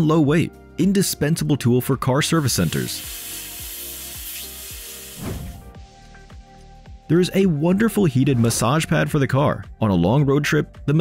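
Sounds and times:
plasma cutter hissing: 2.6s - 5.7s
music with steady beat: 2.8s - 7.6s.

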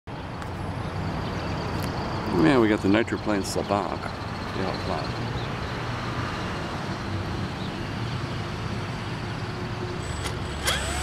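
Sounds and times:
model airplane engine droning: 10.0s - 11.0s.

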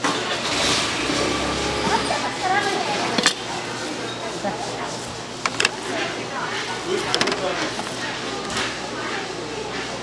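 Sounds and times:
engine running: 0.4s - 2.7s.

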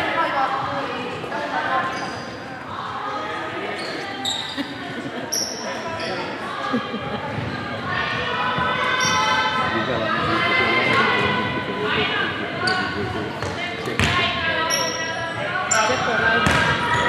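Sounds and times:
players' voices: 0.0s - 17.0s
short high squeaks: 3.8s - 4.6s.

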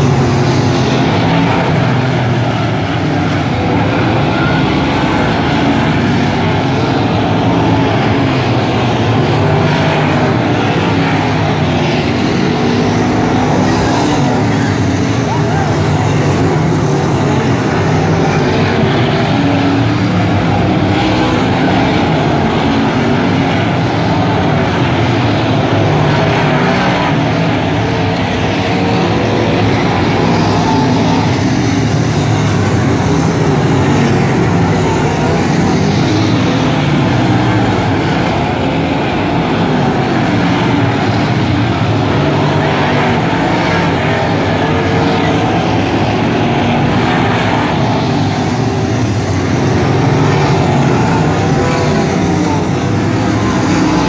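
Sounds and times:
race car engines running hard: 0.0s - 54.0s.

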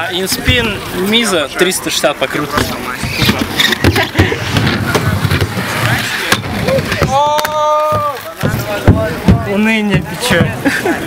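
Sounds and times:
skate wheels rolling on concrete: 0.0s - 11.0s
skates scraping and clacking: 2.2s - 10.8s.

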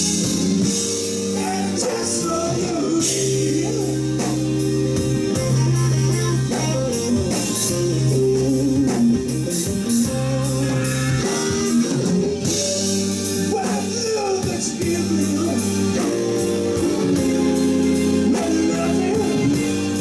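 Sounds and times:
bass guitar: 0.0s - 20.0s
drum kit with cymbal strokes: 0.0s - 20.0s
electric guitar: 0.0s - 20.0s.

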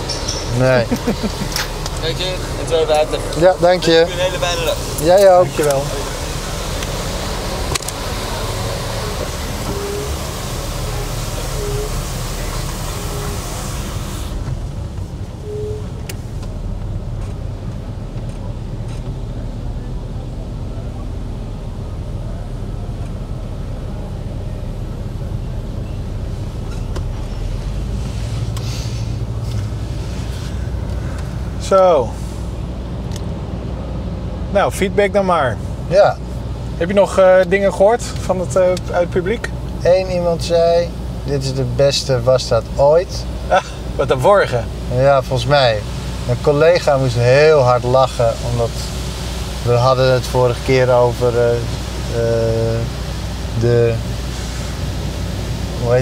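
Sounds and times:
car cabin noise: 0.0s - 56.0s.

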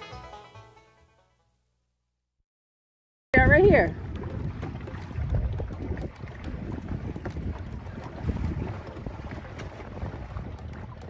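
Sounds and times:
water washing along boat hull: 3.4s - 11.0s
wind buffeting microphone: 3.4s - 11.0s.

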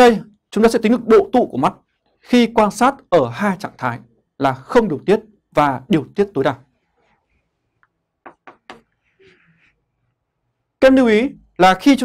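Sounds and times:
chalk tapping on chalkboard: 8.2s - 9.1s.

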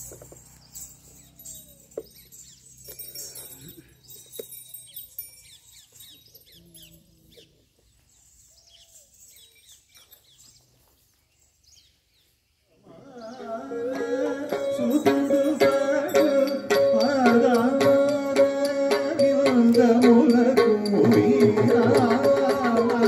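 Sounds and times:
birds chirping and calling: 0.0s - 20.0s.

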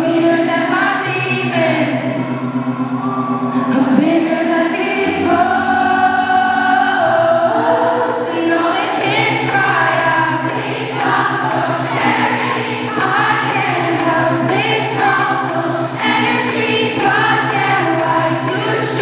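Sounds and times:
synth backing with bass line: 0.0s - 19.0s
woman singing into a microphone: 0.0s - 19.0s.

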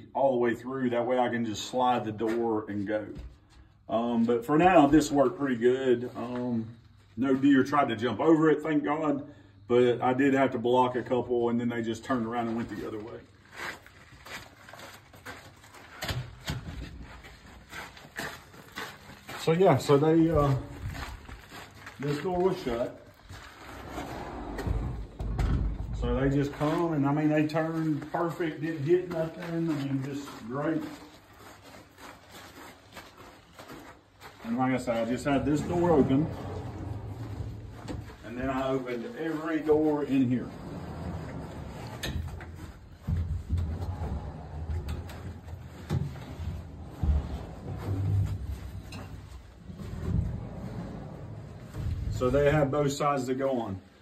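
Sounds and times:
footsteps on wood shavings: 13.0s - 16.0s, 17.0s - 24.3s, 26.5s - 40.5s
sliding door rumbling on track: 23.3s - 26.8s, 34.9s - 52.8s
sliding door knocks: 24.2s - 26.2s, 35.3s - 38.2s, 43.0s - 52.7s.

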